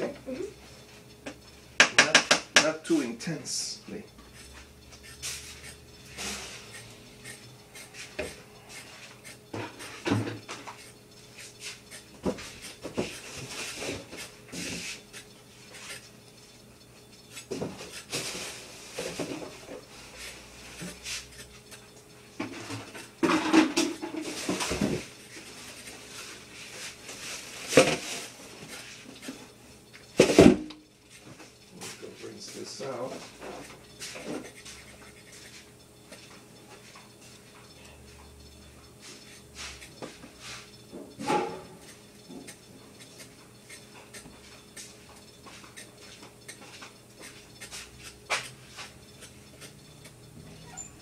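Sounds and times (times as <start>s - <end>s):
utensils and dishes clattering: 5.2s - 6.8s, 7.9s - 10.8s, 22.3s - 29.5s, 39.0s - 49.8s.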